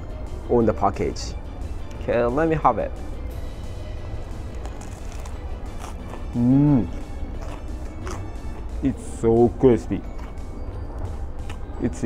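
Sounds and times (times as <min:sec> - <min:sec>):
soft background music: 0:00.0 - 0:12.0
crunchy chewing: 0:04.4 - 0:08.7, 0:10.0 - 0:10.5, 0:11.4 - 0:11.7.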